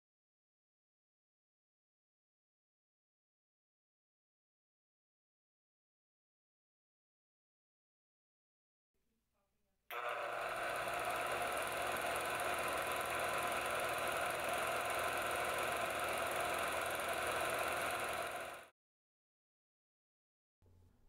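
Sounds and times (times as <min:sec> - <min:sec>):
film projector running: 0:09.9 - 0:18.7.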